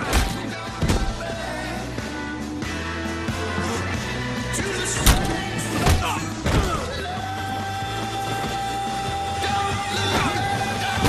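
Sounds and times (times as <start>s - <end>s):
film music score: 0.0s - 11.0s.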